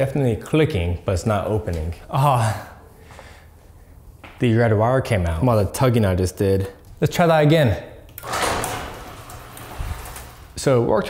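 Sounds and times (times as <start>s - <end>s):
garage door rumbling along tracks: 8.2s - 11.0s.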